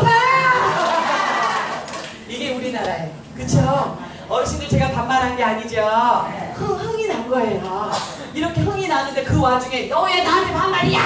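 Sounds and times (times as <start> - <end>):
woman calling out: 0.0 - 0.8
people clapping in rhythm: 0.8 - 2.2.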